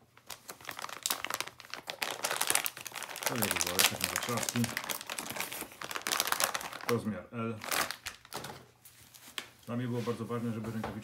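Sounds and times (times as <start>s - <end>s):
plastic bag crinkling: 0.0s - 9.7s
person speaking: 3.2s - 5.0s.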